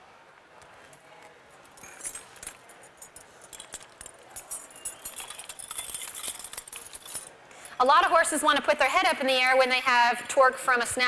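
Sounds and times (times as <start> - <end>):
metal chains jingling and clinking: 1.7 - 7.4.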